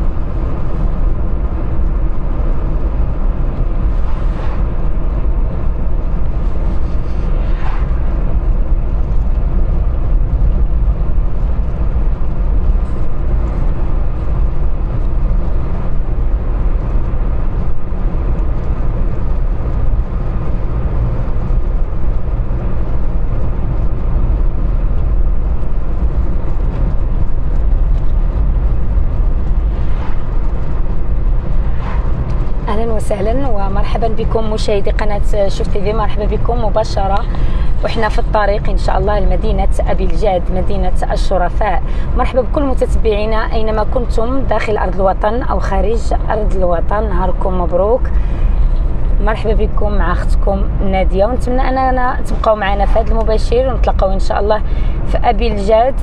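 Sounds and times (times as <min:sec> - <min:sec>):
car interior road rumble: 0:00.0 - 0:56.0.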